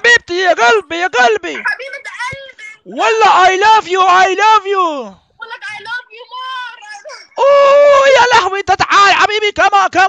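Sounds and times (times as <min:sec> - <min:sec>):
man wailing cry: 0:07.3 - 0:08.4.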